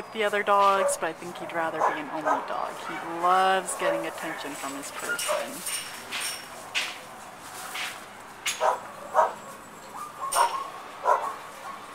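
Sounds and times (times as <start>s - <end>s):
dog yipping and whimpering: 5.0s - 5.6s, 8.6s - 11.9s
dog whining: 8.6s - 11.8s.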